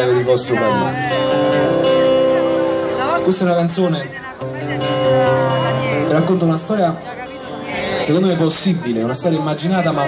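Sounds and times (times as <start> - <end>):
amplified acoustic guitar chords: 0.0 - 10.0.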